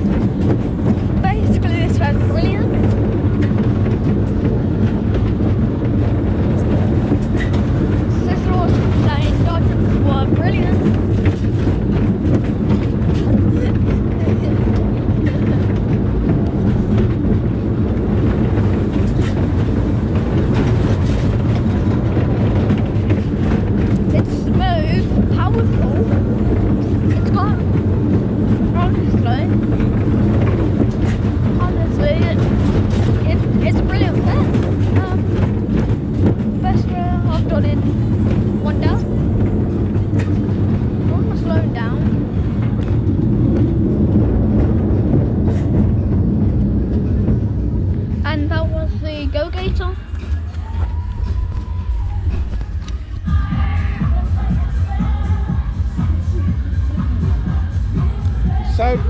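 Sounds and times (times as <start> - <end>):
loud low machine hum: 0.0 - 59.0.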